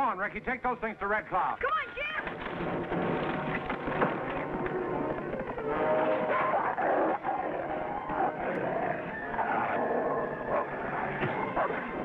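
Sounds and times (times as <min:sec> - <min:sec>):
dog snarling: 0:06.3 - 0:11.8.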